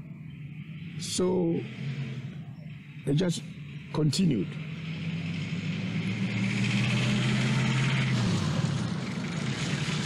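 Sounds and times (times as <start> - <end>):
road noise: 0.0 - 10.0
vehicle engine droning: 0.0 - 10.0.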